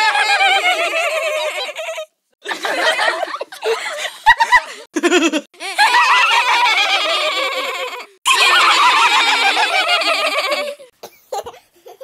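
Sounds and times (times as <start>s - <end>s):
babies laughing: 0.0s - 12.0s.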